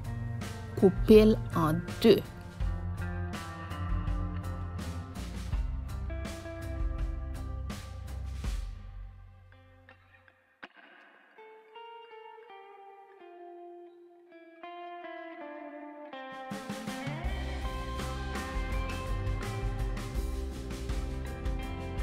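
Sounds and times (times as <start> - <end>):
plucked guitar melody: 0.0 - 7.4, 9.6 - 22.0
low bass notes: 0.0 - 8.7, 17.3 - 22.0.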